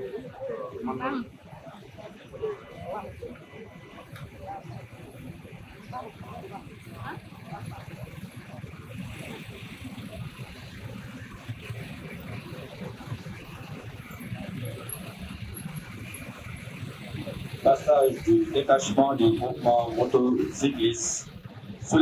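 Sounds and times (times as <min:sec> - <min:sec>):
faint voices: 0:00.0 - 0:22.0
motorcycle engines rumbling: 0:00.0 - 0:22.0.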